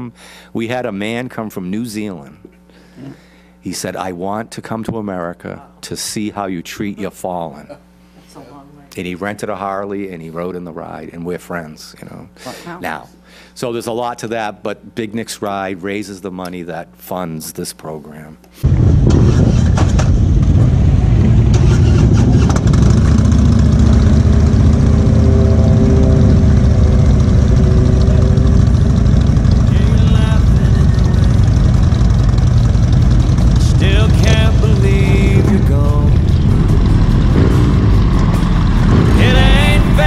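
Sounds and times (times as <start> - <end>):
wind noise on camera: 18.7 - 24.5
motorcycle engines running: 18.7 - 40.0.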